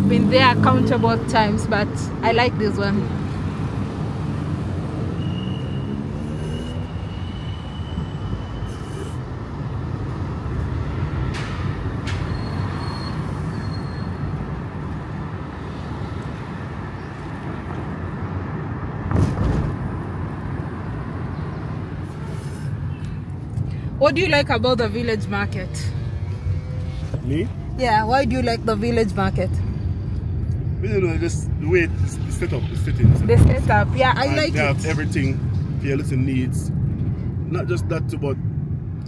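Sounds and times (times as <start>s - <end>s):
car road and engine rumble: 0.0s - 39.0s
brief loud knock: 19.1s - 19.8s.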